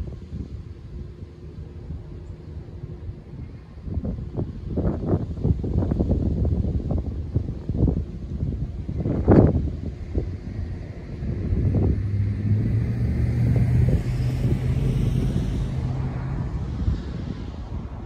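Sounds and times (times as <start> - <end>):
low vehicle engine hum: 0.0 - 18.0
wind buffeting microphone: 0.0 - 18.0.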